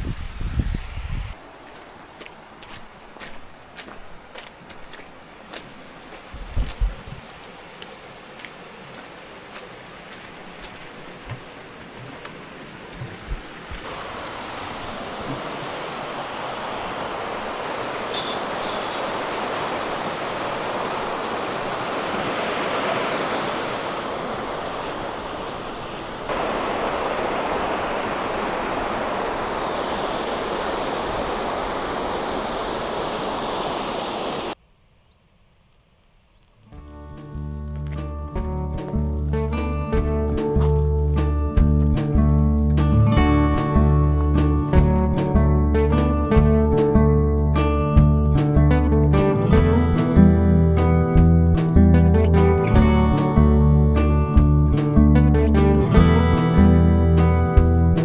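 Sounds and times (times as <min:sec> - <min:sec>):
footsteps: 0:01.6 - 0:13.9
water rushing through stone channel: 0:05.3 - 0:34.6.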